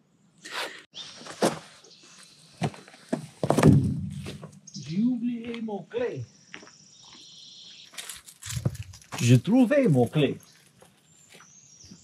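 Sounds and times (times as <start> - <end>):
irregular thuds and knocks: 2.6 - 4.6.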